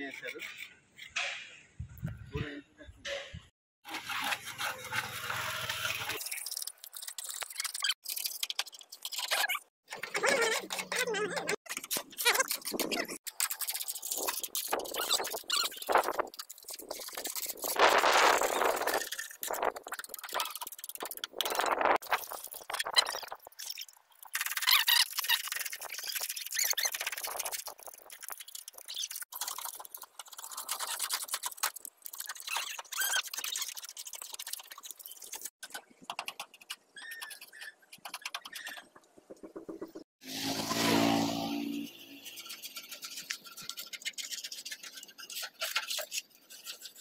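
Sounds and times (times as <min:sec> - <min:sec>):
paint scraper scraping wood: 0:03.8 - 0:06.3, 0:42.2 - 0:47.0
scraper blade squealing: 0:14.6 - 0:16.2, 0:24.4 - 0:29.8, 0:32.1 - 0:34.1.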